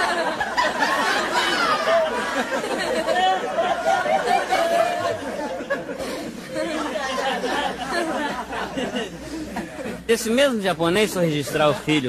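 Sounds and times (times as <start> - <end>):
audience laughing and chattering: 0.0 - 12.0.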